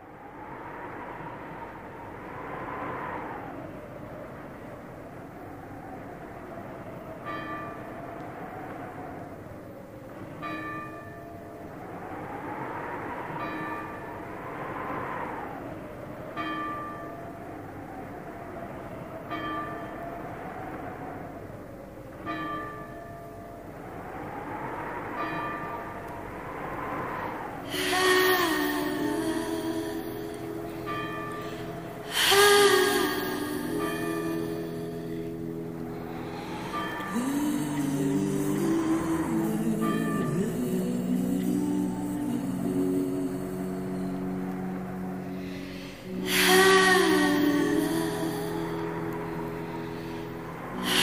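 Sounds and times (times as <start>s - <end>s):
wavering drone: 23.6s - 51.0s
bell tolling: 27.8s - 51.0s.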